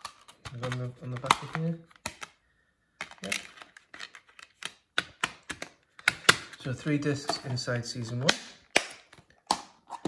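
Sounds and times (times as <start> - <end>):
plastic disc case clicking: 0.0 - 2.4, 3.0 - 9.7.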